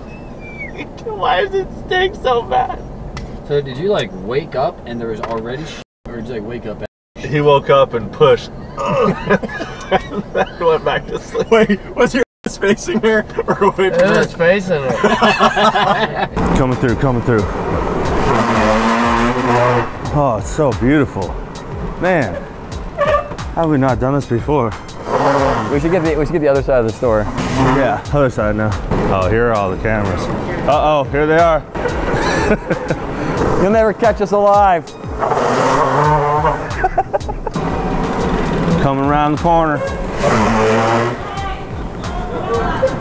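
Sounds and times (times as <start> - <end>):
man laughing: 8.8 - 12.2, 12.8 - 14.1, 14.7 - 16.4, 31.5 - 33.4, 36.2 - 37.6.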